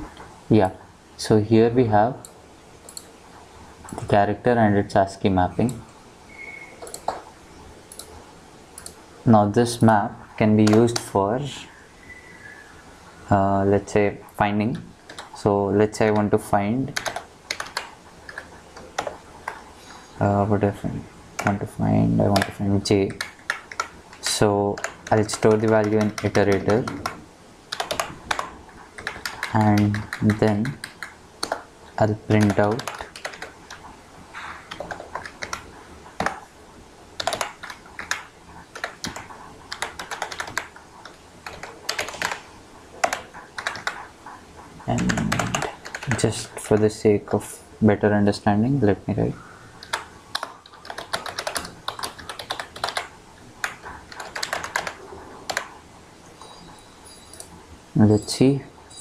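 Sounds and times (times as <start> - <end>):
computer keyboard typing: 2.2 - 3.1, 6.8 - 7.3, 7.9 - 8.2, 8.8 - 9.0, 10.5 - 11.2, 15.1 - 20.0, 21.4 - 33.9, 34.7 - 36.5, 37.2 - 47.0, 49.8 - 57.5.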